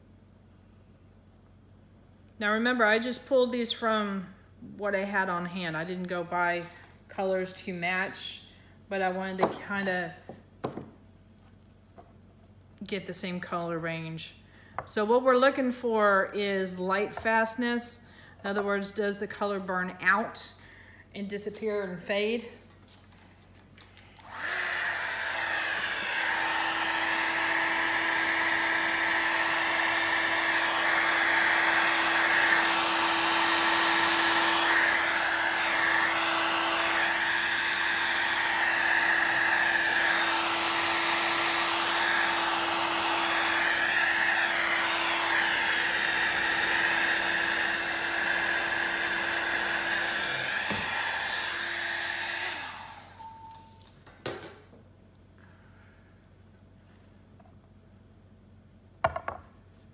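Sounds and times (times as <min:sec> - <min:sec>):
hair dryer blowing: 0:24.2 - 0:53.3.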